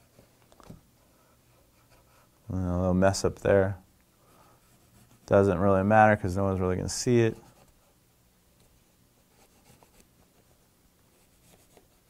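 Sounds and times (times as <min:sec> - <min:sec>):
pencil scratching on paper: 0:04.6 - 0:05.3, 0:09.2 - 0:10.1, 0:11.1 - 0:12.0.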